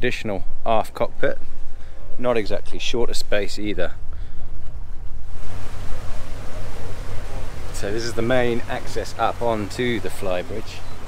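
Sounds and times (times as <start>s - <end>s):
wind and water rushing: 0.0s - 11.0s.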